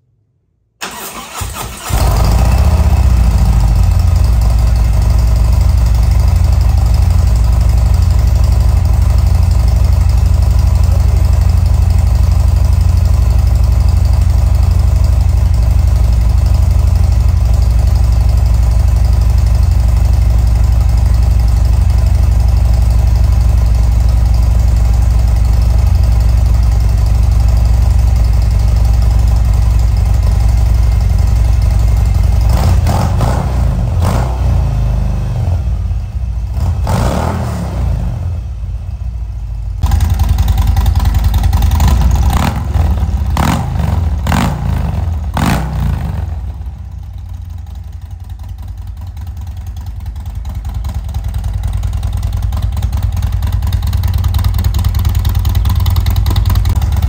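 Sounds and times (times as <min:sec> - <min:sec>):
motorcycle starter cranking: 0:00.8 - 0:02.7
motorcycle engine idling: 0:00.9 - 0:57.0.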